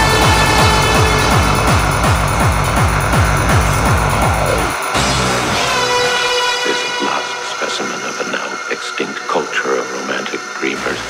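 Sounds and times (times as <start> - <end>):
distorted kick drums: 0.0 - 6.0.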